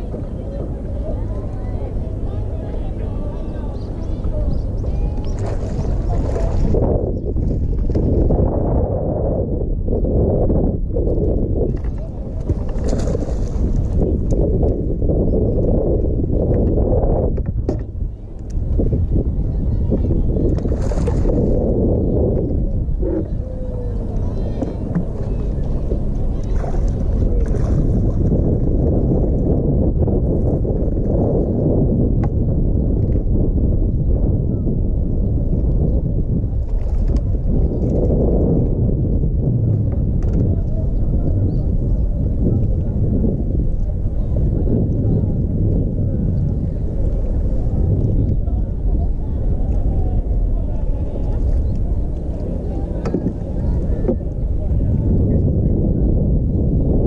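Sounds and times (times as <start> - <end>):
water sloshing against boat hull: 0.0 - 8.6, 11.0 - 55.7
wind buffeting microphone: 0.0 - 57.0.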